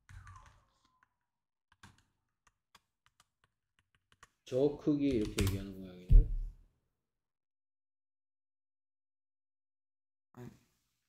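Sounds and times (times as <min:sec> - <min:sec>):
computer keyboard keystrokes: 0:05.1 - 0:05.6.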